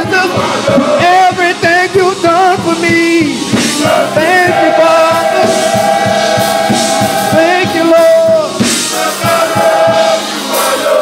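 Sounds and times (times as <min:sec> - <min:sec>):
steady beat: 0:00.0 - 0:11.0.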